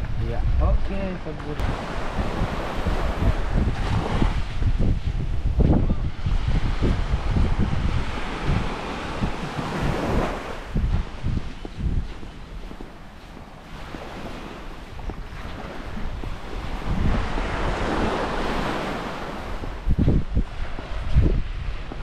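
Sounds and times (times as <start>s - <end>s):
wind buffeting microphone: 0.0s - 22.0s
small waves breaking on shore: 0.9s - 22.0s.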